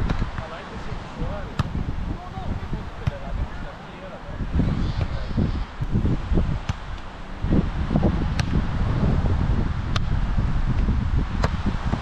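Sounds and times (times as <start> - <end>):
hands slapping volleyball: 0.0 - 0.5, 1.6 - 1.8, 3.0 - 3.3, 6.6 - 7.1, 8.3 - 8.6, 9.9 - 10.1, 10.8 - 12.0
wind buffeting microphone: 0.0 - 12.0.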